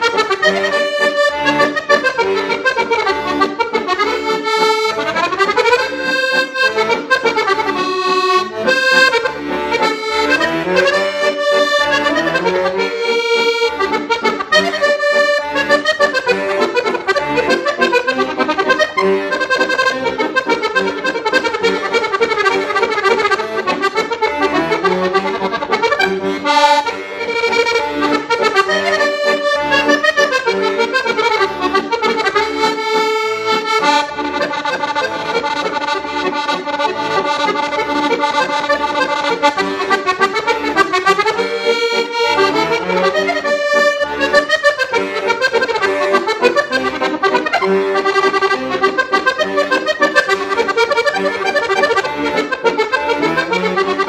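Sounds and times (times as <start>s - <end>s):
accordion playing lively tune: 0.0s - 54.0s.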